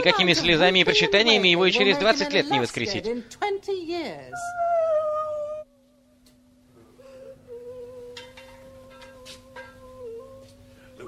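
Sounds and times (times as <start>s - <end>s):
long wavering held note: 4.3s - 11.0s.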